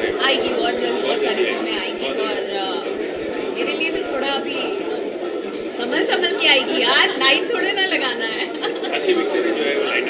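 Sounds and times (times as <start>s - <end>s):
voices talking over one another: 0.0s - 10.0s.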